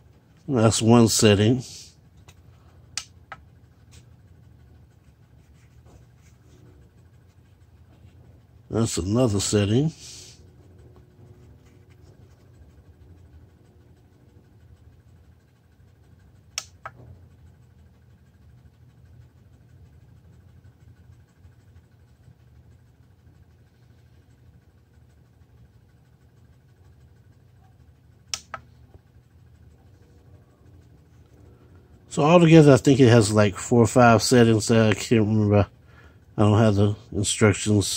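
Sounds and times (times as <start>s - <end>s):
faint low room hum: 0.0s - 37.9s.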